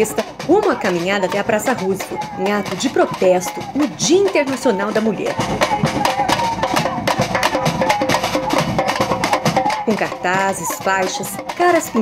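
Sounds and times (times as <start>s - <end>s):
snare and bass drums playing: 0.0s - 12.0s
tune above drums: 0.0s - 12.0s.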